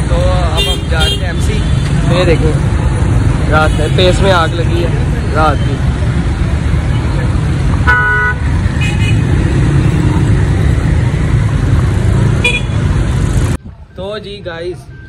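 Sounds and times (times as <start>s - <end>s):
road traffic rumble: 0.0s - 15.0s
vehicle horn honking: 7.8s - 9.3s, 12.4s - 12.8s.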